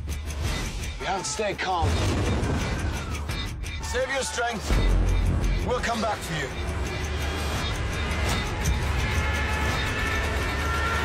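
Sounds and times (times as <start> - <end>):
tense film trailer score: 0.0 - 11.0.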